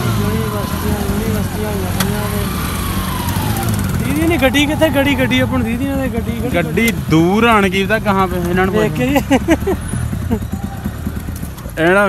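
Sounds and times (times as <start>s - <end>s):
people talking: 0.0s - 9.8s, 11.7s - 12.0s
vehicle engine idling: 0.0s - 12.0s.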